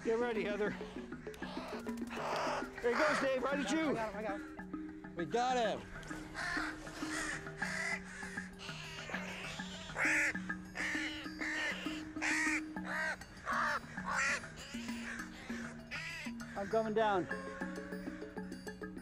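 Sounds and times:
background music with low notes: 0:00.0 - 0:19.0
crows cawing: 0:00.0 - 0:19.0.

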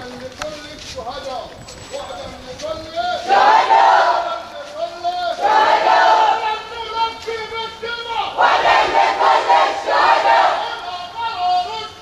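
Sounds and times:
crowd chanting in unison: 0:03.2 - 0:04.5, 0:05.4 - 0:06.5, 0:08.4 - 0:10.9.

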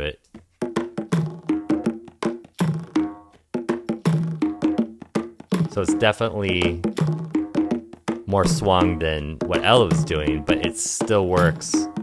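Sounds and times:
hand percussion groove: 0:00.0 - 0:12.0.

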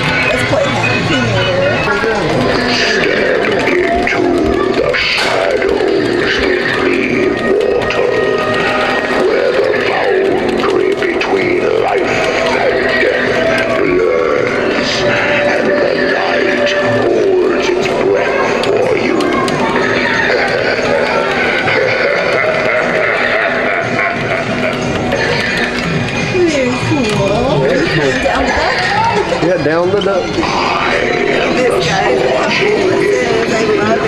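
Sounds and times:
music with wavering voice: 0:00.0 - 0:34.0.

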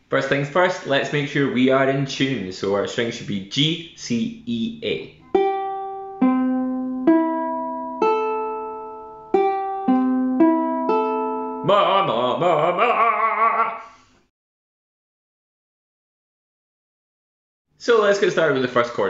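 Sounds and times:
ukulele strings plucked: 0:05.2 - 0:12.2
man singing: 0:11.6 - 0:13.9.

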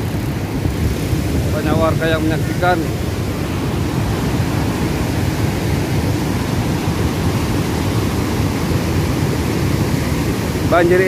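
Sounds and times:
torrent of muddy water rushing: 0:00.0 - 0:11.0.

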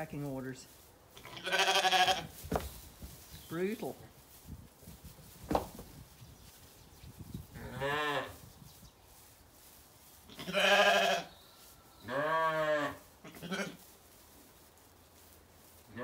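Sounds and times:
sheep bleating: 0:01.2 - 0:02.3, 0:10.3 - 0:11.3, 0:12.0 - 0:13.8.

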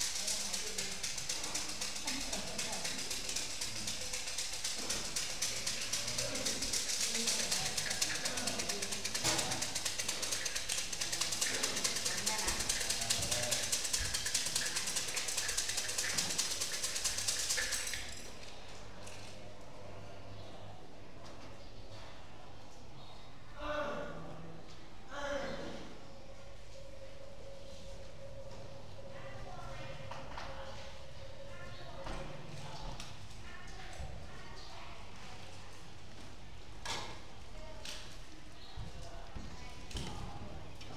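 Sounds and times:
rapid high pulsing rattle: 0:00.0 - 0:18.4
people talking: 0:00.0 - 0:22.6, 0:25.1 - 0:25.9, 0:29.0 - 0:35.8, 0:37.5 - 0:40.9
faint voices: 0:00.0 - 0:40.9.

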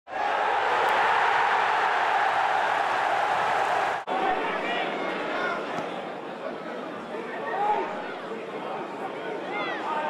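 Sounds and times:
stadium crowd roar: 0:00.1 - 0:10.0.

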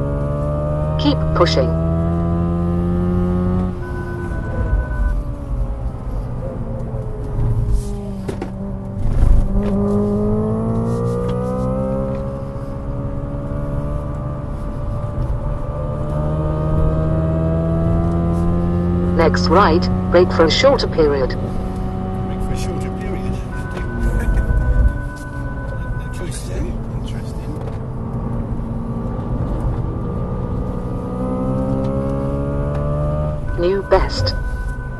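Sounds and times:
car engine accelerating and braking: 0:00.0 - 0:34.9
electronic beep: 0:03.8 - 0:05.2, 0:22.3 - 0:27.6, 0:33.4 - 0:34.9.

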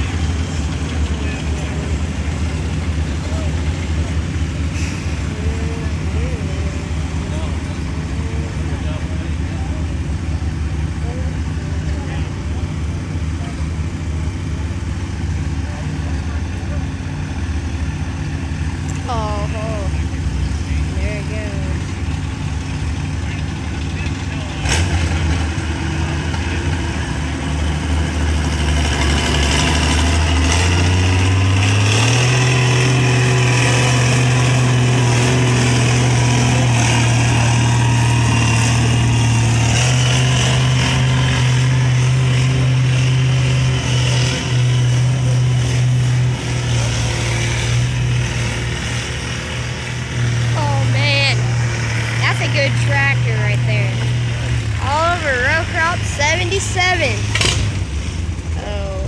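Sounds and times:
tractor engine under load: 0:00.0 - 0:59.0.

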